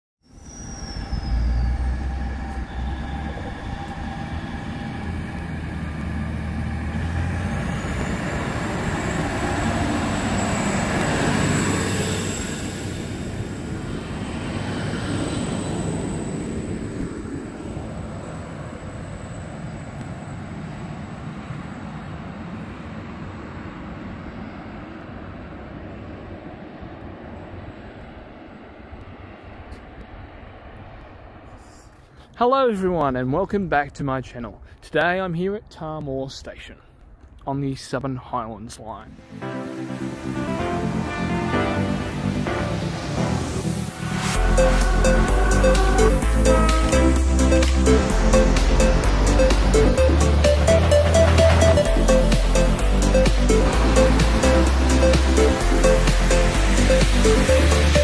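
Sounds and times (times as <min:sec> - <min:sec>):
thin high whine: 0:00.2 - 0:20.9, 0:39.1 - 0:58.0
diesel railcar engine drone: 0:00.3 - 0:32.4, 0:39.0 - 0:58.0.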